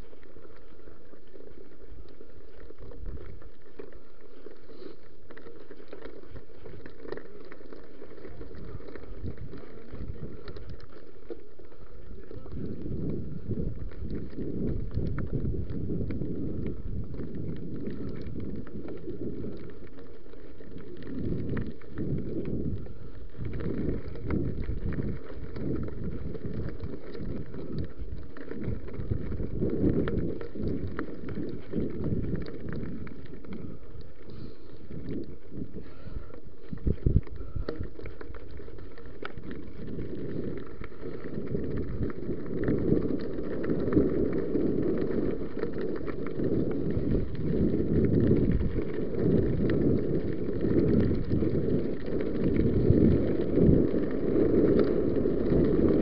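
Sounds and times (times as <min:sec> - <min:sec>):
bike rattling over bumps: 0:00.0 - 0:56.0
bike tyres crunching on gravel: 0:00.0 - 0:56.0
wind buffeting microphone: 0:08.0 - 0:11.0, 0:12.1 - 0:56.0.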